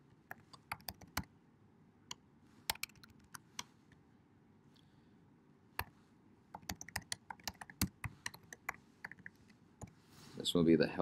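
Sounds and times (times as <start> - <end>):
keyboard keys clicking: 6.6 - 9.3.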